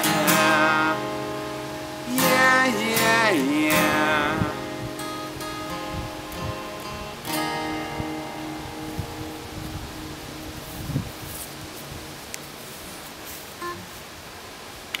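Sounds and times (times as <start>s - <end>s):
acoustic guitar chord ringing: 0.0s - 12.8s.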